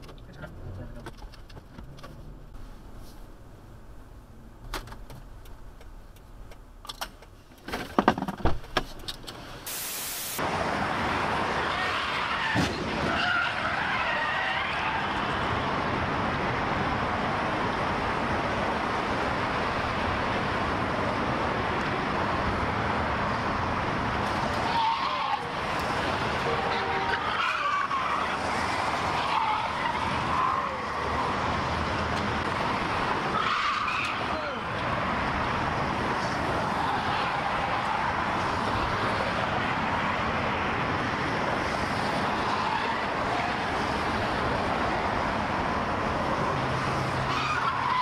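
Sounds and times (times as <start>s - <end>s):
freeway traffic rushing: 0.0s - 48.0s.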